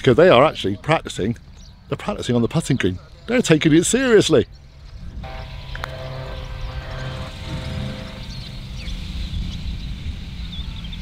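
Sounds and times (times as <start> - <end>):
engine running drone: 4.6 - 11.0.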